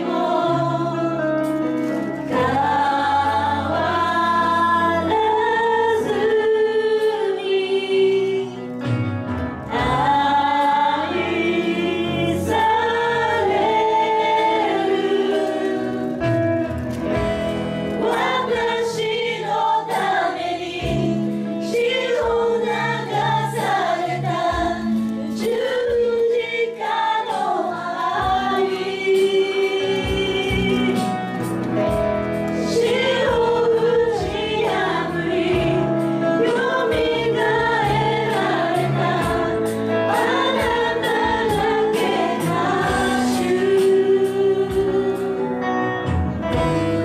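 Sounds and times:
electric guitar: 0.0 - 47.0
keyboard: 0.0 - 47.0
woman singing into microphone: 2.3 - 8.8, 18.0 - 31.3, 32.6 - 45.8.

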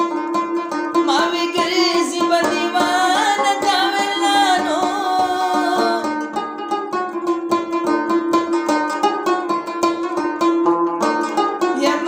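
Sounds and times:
plucked lute notes: 0.0 - 12.0
person singing wavering melody: 1.0 - 6.3, 11.7 - 12.0.

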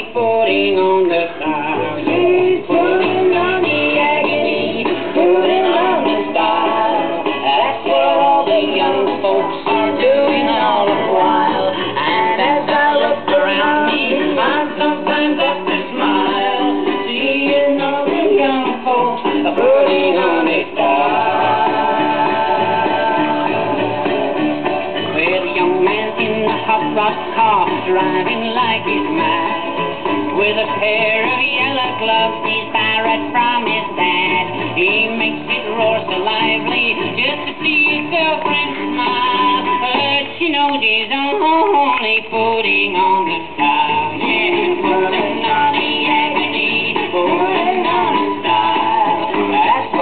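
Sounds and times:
old record song with band: 0.0 - 50.0.

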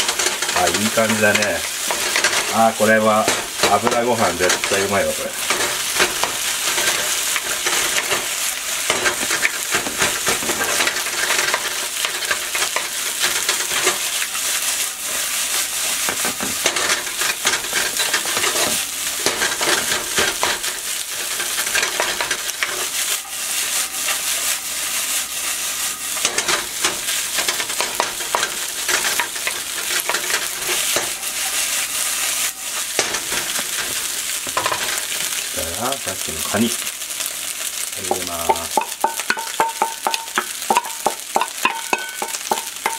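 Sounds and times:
spatula scraping a wok: 0.0 - 35.5
rice sizzling in a wok: 0.0 - 42.9.

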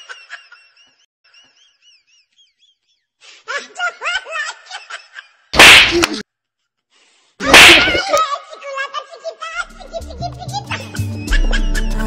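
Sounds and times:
loud smack-like crack: 5.6 - 6.2.

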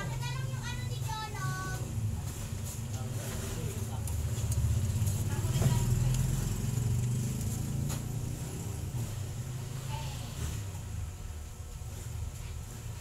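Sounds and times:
faint indistinct voices: 0.0 - 6.8
vehicle engine rumble passing: 2.8 - 11.3.

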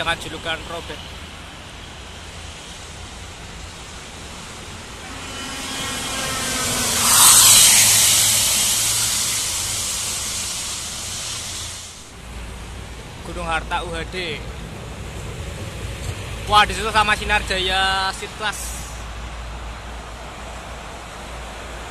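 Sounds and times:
coach passing at highway speed: 0.0 - 21.9.

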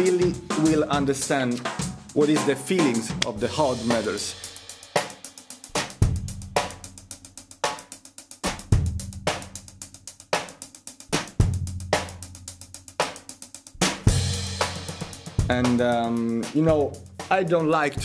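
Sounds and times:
drum kit groove: 0.0 - 18.0
hi-hat and cymbal strokes: 0.0 - 18.0.

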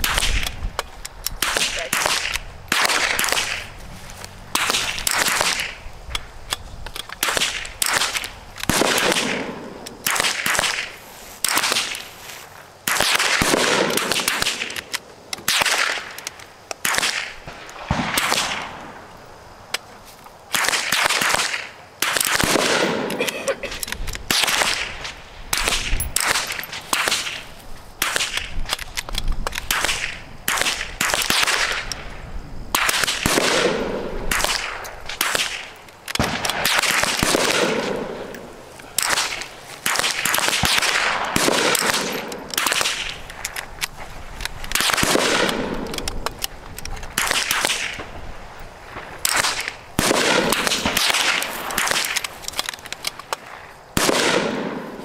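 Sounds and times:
rifle shots echoing: 1.4 - 3.8, 4.5 - 5.8, 7.2 - 12.0, 12.8 - 14.9, 16.8 - 19.0, 20.5 - 23.3, 24.3 - 27.4, 29.7 - 32.0, 32.7 - 43.6, 44.7 - 46.4, 47.1 - 48.1, 48.9 - 52.4, 53.4 - 55.0.

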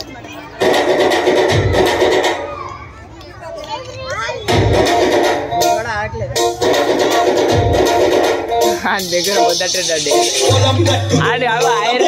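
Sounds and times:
children chattering: 0.0 - 12.0
loud dance music: 0.6 - 2.6, 4.4 - 12.0.

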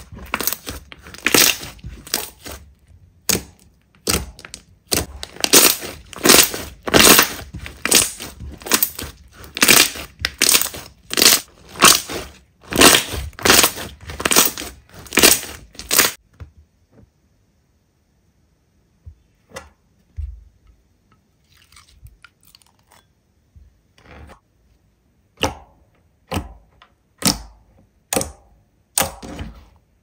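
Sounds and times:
slime squishing: 0.0 - 16.2.

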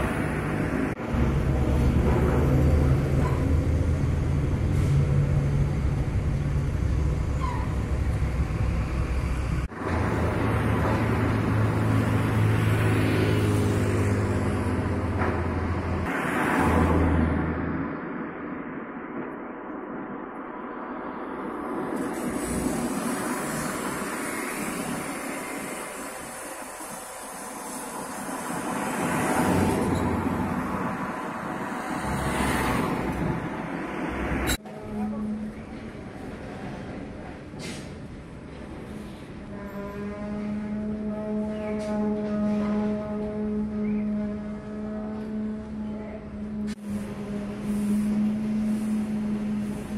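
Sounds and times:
large engine humming: 0.0 - 16.1, 34.2 - 49.9
site and traffic rumble: 0.0 - 49.9.

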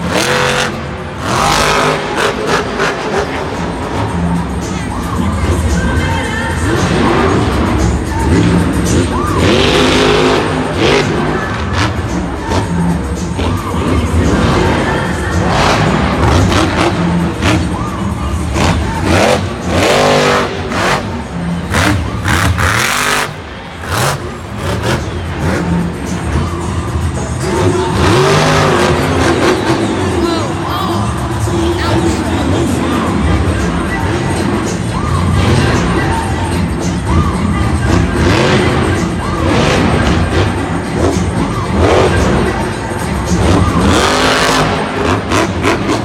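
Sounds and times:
stadium music over loudspeakers: 0.0 - 46.0
truck engine revving: 0.0 - 46.0.

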